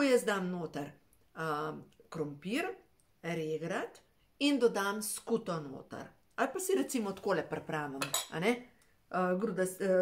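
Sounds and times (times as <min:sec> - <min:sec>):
woman speaking: 0:00.0 - 0:10.0
plate clinking: 0:08.0 - 0:08.4.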